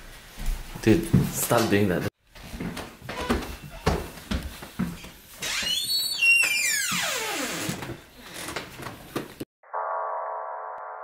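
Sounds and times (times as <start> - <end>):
door hinge creaking: 5.4 - 8.0.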